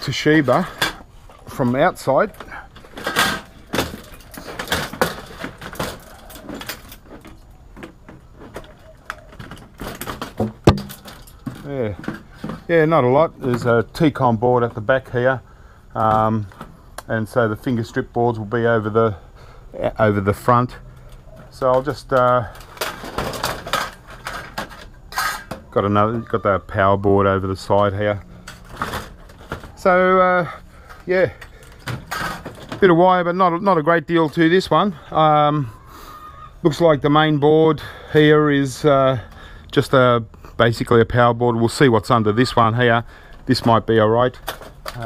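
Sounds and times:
plastic and metal parts rattling: 0.4s - 13.7s, 21.0s - 25.8s, 28.4s - 30.0s, 30.8s - 33.0s, 43.3s - 45.0s.

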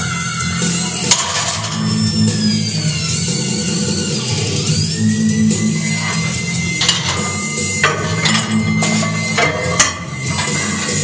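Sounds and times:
synth music with bass line: 0.0s - 11.0s.

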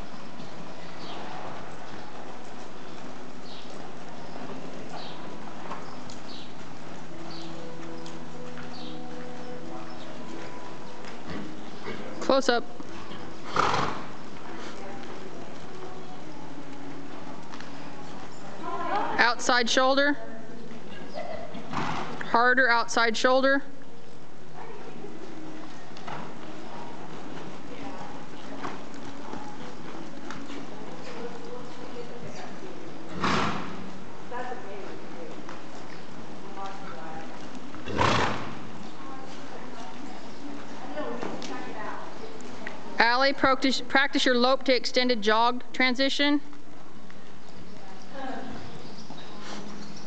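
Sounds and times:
horse breathing: 0.0s - 15.6s, 48.5s - 50.0s
muted hoofbeats on dirt: 0.0s - 19.2s, 23.8s - 43.3s
horse snorting: 11.2s - 12.3s, 12.9s - 14.8s, 21.5s - 22.3s, 33.1s - 33.9s, 37.8s - 38.8s.

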